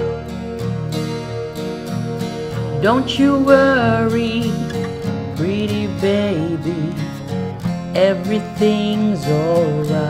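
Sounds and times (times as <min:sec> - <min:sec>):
acoustic guitar strumming chords: 0:00.0 - 0:10.0
sustained backing tones: 0:00.0 - 0:10.0.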